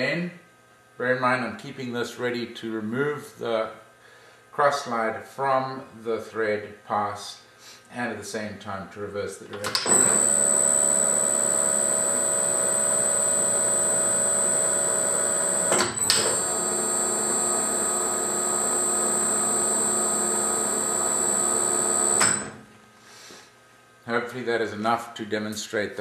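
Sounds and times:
lathe click: 0:09.6 - 0:22.6
lathe motor whining: 0:09.8 - 0:22.6.

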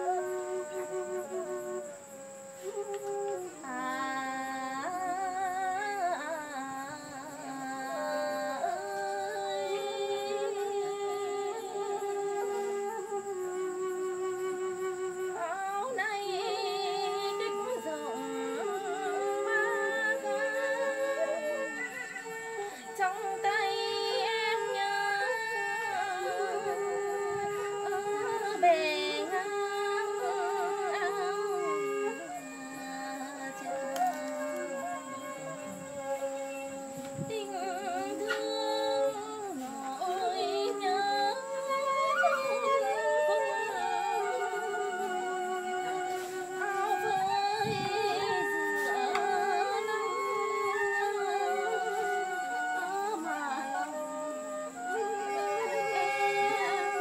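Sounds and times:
bamboo flute melody: 0:00.0 - 0:57.0.

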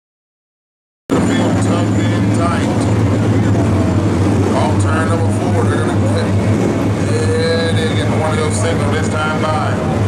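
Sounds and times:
indistinct voices: 0:01.1 - 0:10.0
race car engines droning: 0:01.1 - 0:10.0.

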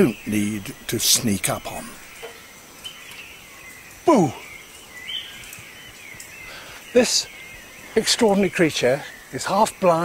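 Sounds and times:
thin high chirping: 0:00.0 - 0:10.0.

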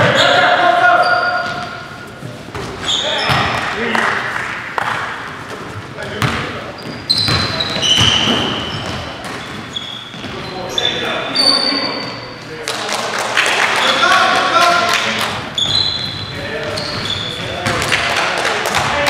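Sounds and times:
sneakers squeaking: 0:00.0 - 0:12.6, 0:13.8 - 0:18.2
basketball bouncing on hardwood floor: 0:07.2 - 0:10.4.

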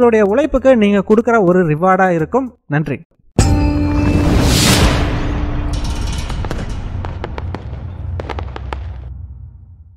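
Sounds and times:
low rumble: 0:04.1 - 0:09.9.

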